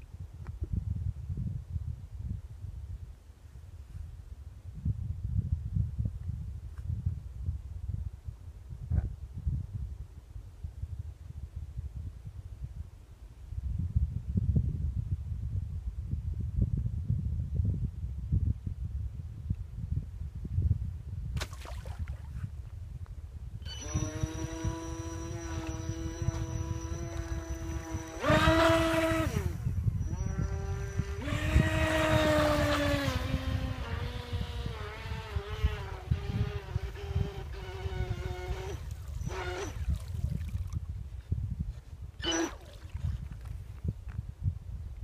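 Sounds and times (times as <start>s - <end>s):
wind rumbling on microphone: 0.0s - 45.0s
electric boat motor whining: 23.6s - 40.2s, 42.2s - 42.8s.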